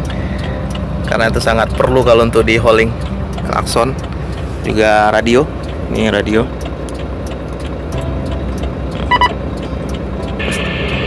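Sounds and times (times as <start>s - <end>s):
diesel engine idling: 0.0s - 11.0s
short electronic beep: 9.1s - 9.4s.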